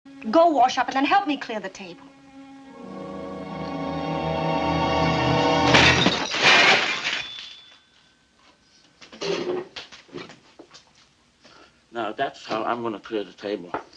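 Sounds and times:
dishes smashing: 0:05.6 - 0:07.8.

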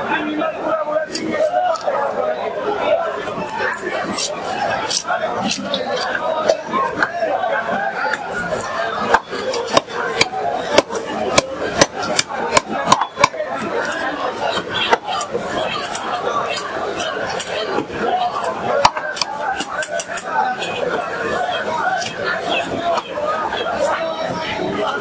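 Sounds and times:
market chatter: 0:00.0 - 0:25.0
blade chopping fish: 0:09.0 - 0:14.0.

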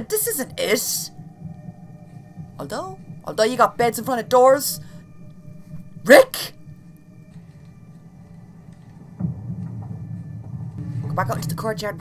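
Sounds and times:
low rumble: 0:00.0 - 0:12.0.

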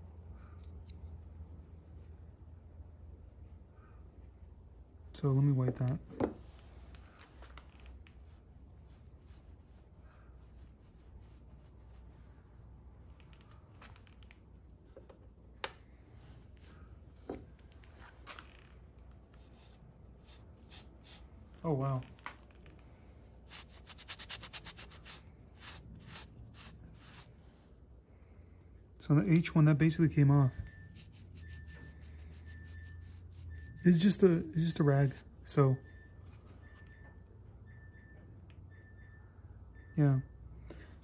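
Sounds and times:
cloth rag rubbing metal: 0:23.5 - 0:27.3, 0:30.8 - 0:35.2.

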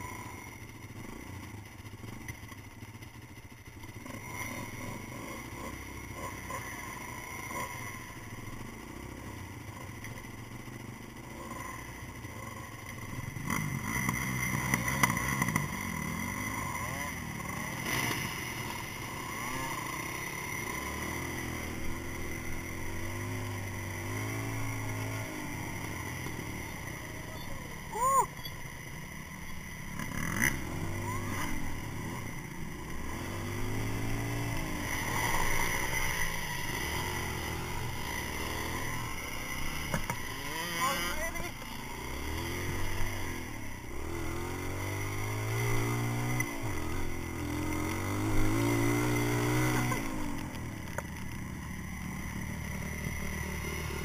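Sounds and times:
dirt bike engine revving: 0:04.0 - 0:09.4, 0:10.5 - 0:54.0.

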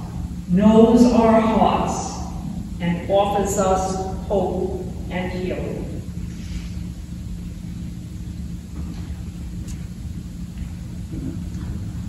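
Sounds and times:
constant low hum: 0:00.0 - 0:12.0
steady low rumble: 0:00.0 - 0:12.0.

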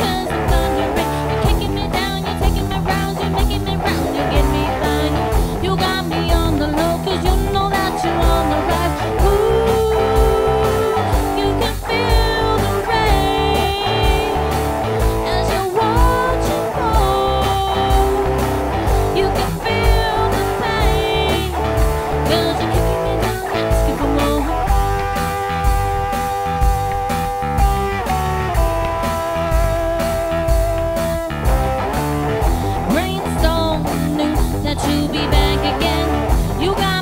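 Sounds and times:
drum beat: 0:00.0 - 0:37.0
electric guitars: 0:00.0 - 0:37.0.

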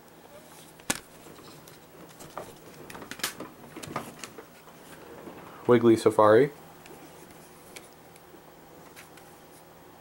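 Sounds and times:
soft rustling: 0:06.6 - 0:08.0.

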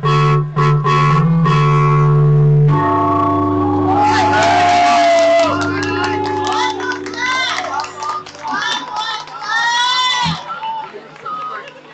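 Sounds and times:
person cheering high-pitched: 0:03.6 - 0:10.4.

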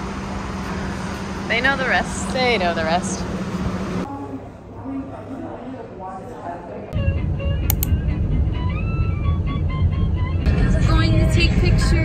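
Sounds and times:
woman's voice: 0:01.5 - 0:03.2.

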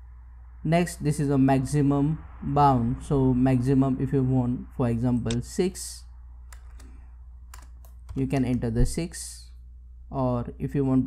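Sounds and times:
low steady hum: 0:00.0 - 0:11.0
computer keys and mouse clicks: 0:06.5 - 0:08.7.

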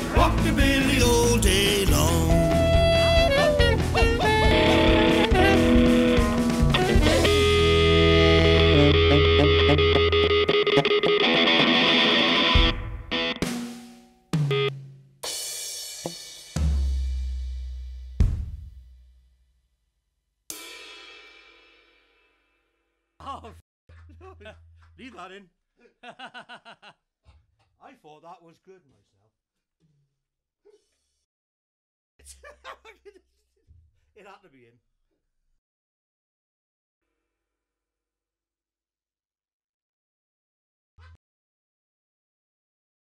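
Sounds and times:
rockabilly band playing: 0:00.0 - 0:14.8.

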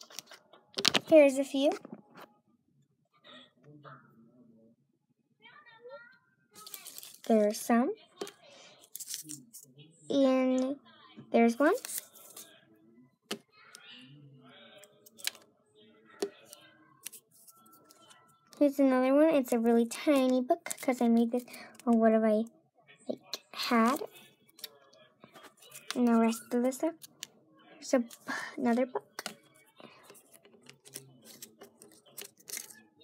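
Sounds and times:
paper rustling: 0:06.6 - 0:07.5, 0:08.9 - 0:09.5, 0:30.0 - 0:32.8.

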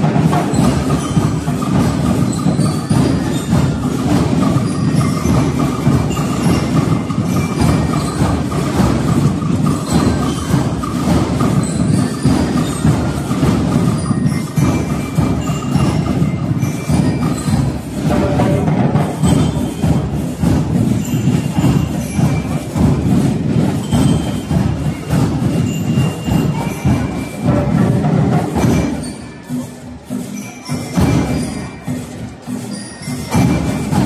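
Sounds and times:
bell lyre notes: 0:00.0 - 0:34.0
marching band drums and cymbals: 0:00.0 - 0:34.0.

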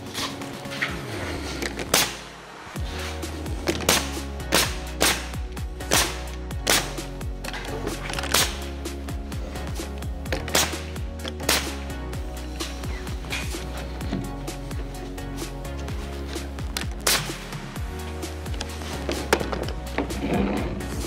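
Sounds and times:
background music: 0:00.0 - 0:21.0
pneumatic nail gun firing: 0:01.8 - 0:02.3, 0:03.7 - 0:07.0, 0:08.0 - 0:08.7, 0:10.4 - 0:11.8, 0:17.0 - 0:17.4.

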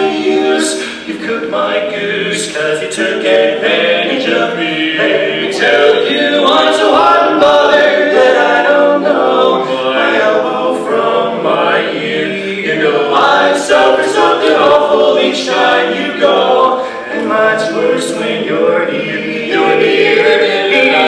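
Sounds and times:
male quartet singing a cappella: 0:00.0 - 0:21.0.

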